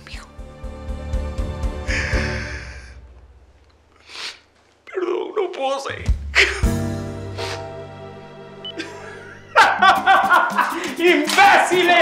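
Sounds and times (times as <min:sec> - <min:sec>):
background music: 0:00.0 - 0:04.1, 0:05.9 - 0:12.0
man laughing mockingly: 0:08.8 - 0:11.3.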